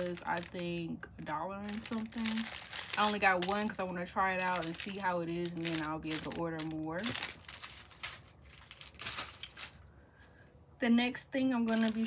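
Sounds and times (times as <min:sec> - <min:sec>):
plastic packaging crinkling: 0:00.0 - 0:00.8, 0:01.6 - 0:09.9, 0:11.6 - 0:12.0.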